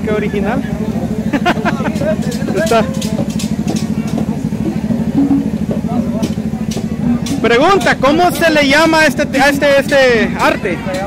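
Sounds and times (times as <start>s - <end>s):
engine idling: 0.0s - 11.0s
faint voices: 0.0s - 11.0s.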